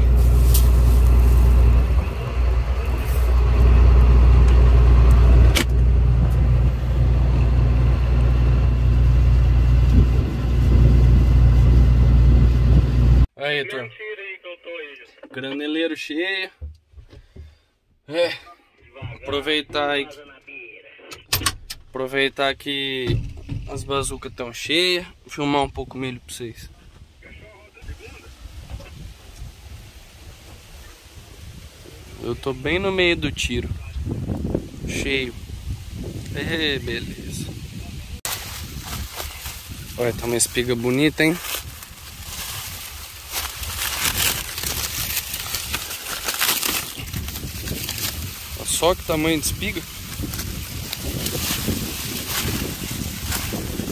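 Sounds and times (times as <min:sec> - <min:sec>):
dry corn leaves rustling: 0:00.0 - 0:05.1, 0:34.8 - 0:53.9
low hum in harvester cab: 0:00.0 - 0:13.3
wind rumble on microphone: 0:00.0 - 0:13.3, 0:26.6 - 0:45.9, 0:46.8 - 0:53.9
sharp clicks and knocks: 0:23.0 - 0:24.3.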